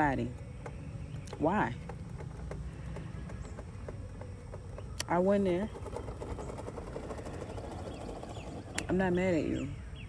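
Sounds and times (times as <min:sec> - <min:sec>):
fast faint ticking: 0:00.0 - 0:09.7.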